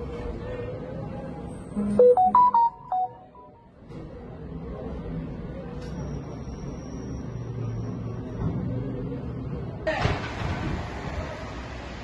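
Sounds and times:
phone ringtone: 0:01.8 - 0:03.6.

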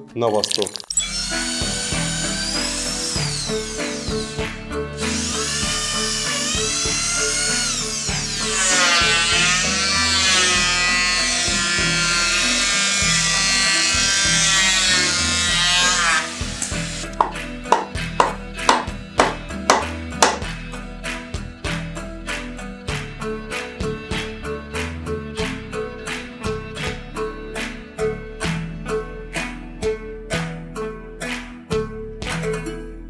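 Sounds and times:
background music: 0:00.0 - 0:33.0
electric drill whining: 0:00.9 - 0:20.4
electric hand planer whining: 0:01.0 - 0:20.5
sharp knocks on timber: 0:17.2 - 0:20.4.

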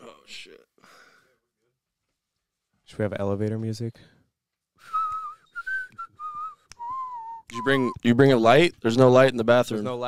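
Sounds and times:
man whistling a tune: 0:04.8 - 0:08.0.

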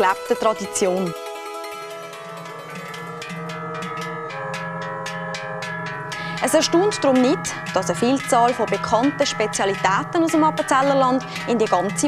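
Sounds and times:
instrumental folk music: 0:00.0 - 0:12.0.

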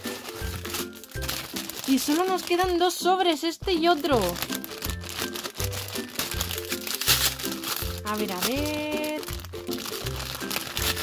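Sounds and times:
children's music: 0:00.0 - 0:11.0
foil packet crinkling: 0:00.0 - 0:11.0.

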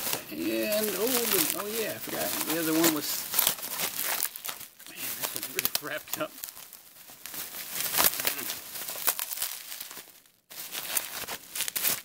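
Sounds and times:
bubble wrap crinkling: 0:00.0 - 0:12.0.

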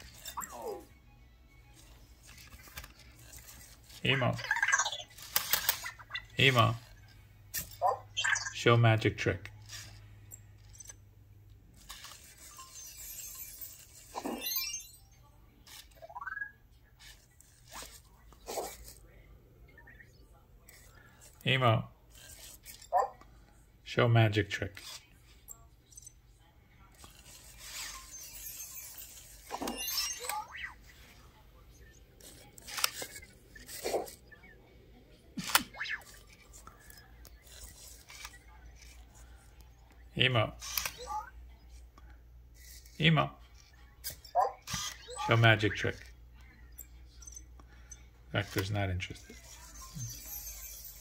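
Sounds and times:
toy robot electronic chirp: 0:00.0 - 0:00.9, 0:01.8 - 0:08.7, 0:11.8 - 0:18.8, 0:27.0 - 0:31.0, 0:31.8 - 0:34.6, 0:35.4 - 0:39.0, 0:40.6 - 0:41.4, 0:43.6 - 0:46.1, 0:46.7 - 0:48.6, 0:49.2 - 0:51.0.

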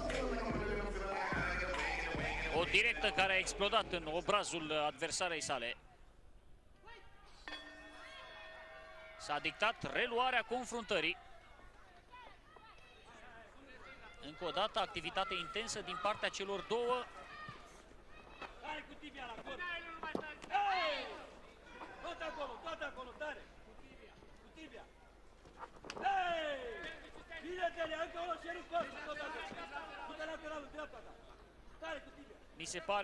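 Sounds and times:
steady ringing tone: 0:07.5 - 0:09.3.

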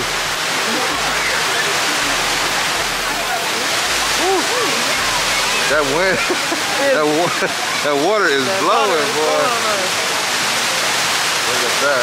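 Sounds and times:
faint voices: 0:00.0 - 0:12.0
fountain water rushing: 0:00.0 - 0:12.0.

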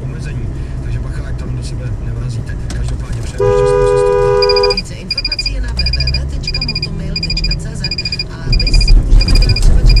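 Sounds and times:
car engine and tyre rumble: 0:00.0 - 0:10.0
level crossing electronic pips: 0:03.4 - 0:10.0.

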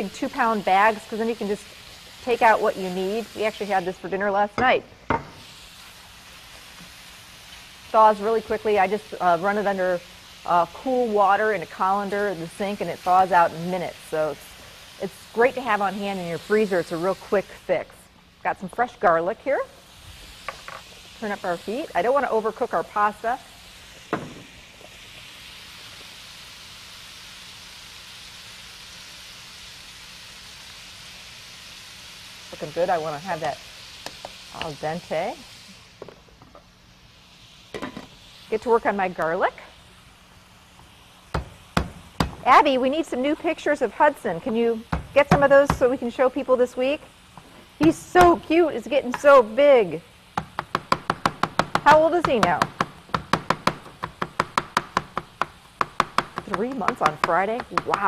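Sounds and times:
food sizzling in hot oil: 0:00.0 - 0:58.0.

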